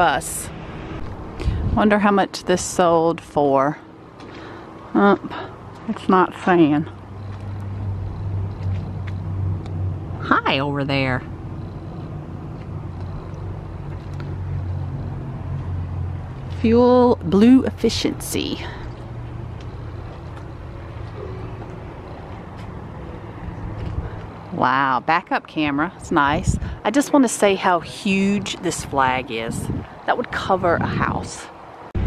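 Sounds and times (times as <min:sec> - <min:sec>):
outdoor background noise: 0:00.0 - 0:32.0
vehicle engine humming: 0:00.0 - 0:32.0.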